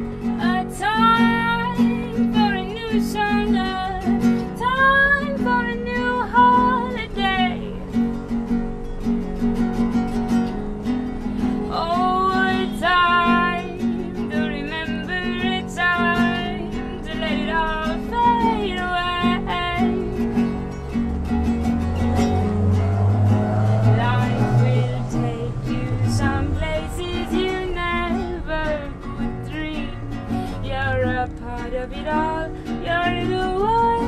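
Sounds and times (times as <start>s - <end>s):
woman singing: 0.0s - 8.2s, 11.3s - 20.6s, 23.8s - 34.0s
strummed acoustic guitar: 0.0s - 34.0s.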